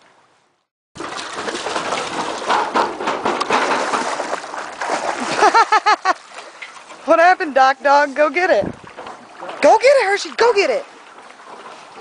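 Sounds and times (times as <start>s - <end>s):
water splashing: 1.0s - 12.0s.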